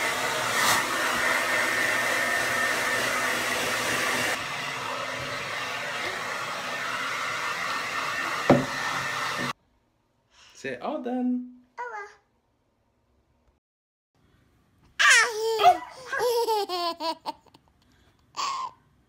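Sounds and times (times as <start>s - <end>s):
hair dryer blowing: 0.0s - 9.6s
sharp knock: 8.5s - 8.7s.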